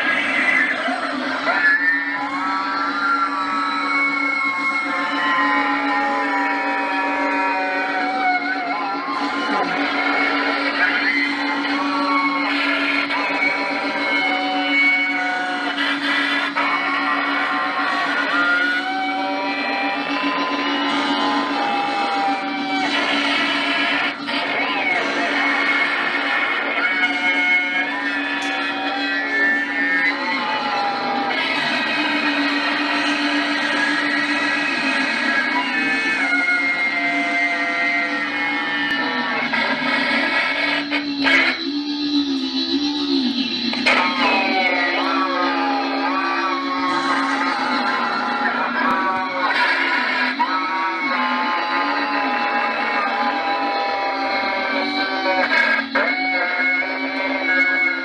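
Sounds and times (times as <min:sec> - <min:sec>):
steady low drone: 0:00.0 - 0:56.0
distorted noise music through megaphone: 0:00.0 - 0:58.0
sliding electronic tones: 0:00.0 - 0:58.0.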